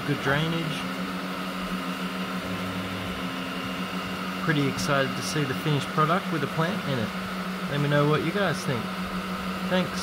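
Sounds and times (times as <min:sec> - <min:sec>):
cooling fans hissing: 0:00.0 - 0:10.0
stepper motors humming: 0:00.0 - 0:10.0.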